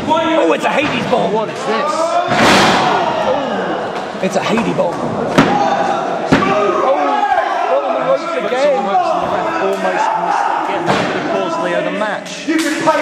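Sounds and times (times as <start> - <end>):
crowd shouting: 1.6 - 4.2, 5.1 - 11.9.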